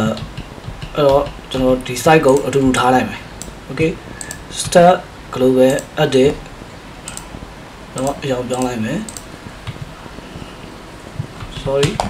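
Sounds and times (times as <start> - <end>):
person speaking: 0.0 - 7.3, 7.9 - 10.6, 11.2 - 12.0.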